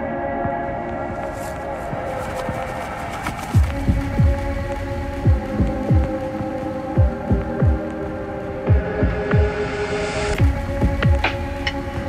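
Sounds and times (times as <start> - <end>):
deep kick drums: 3.6 - 4.6, 5.2 - 6.2, 6.9 - 7.9, 8.7 - 9.6.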